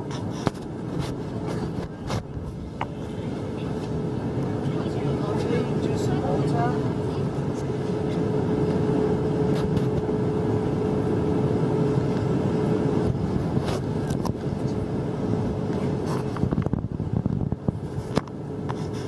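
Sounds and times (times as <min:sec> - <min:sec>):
airliner cabin engine drone: 0:00.0 - 0:19.0
steady hum: 0:00.0 - 0:19.0
faint passenger voices: 0:00.2 - 0:16.6.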